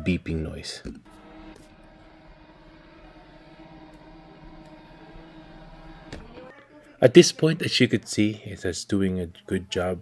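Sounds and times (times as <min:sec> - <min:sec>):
robot vacuum motor hum: 0:01.1 - 0:06.5.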